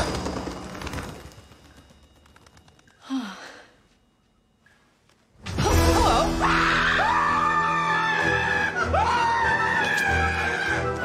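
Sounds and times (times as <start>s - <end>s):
music: 5.4s - 11.0s.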